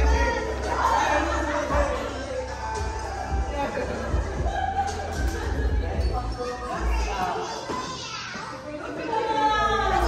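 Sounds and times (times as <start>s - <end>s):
bass-heavy music: 0.0s - 7.1s
children calling and chattering: 0.0s - 10.0s.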